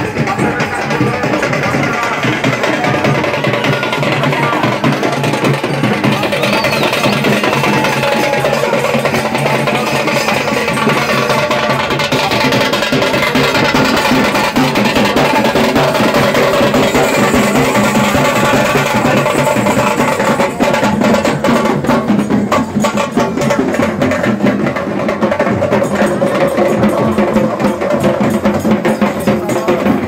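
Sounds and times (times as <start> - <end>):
drums and percussion rhythm: 0.0 - 30.0.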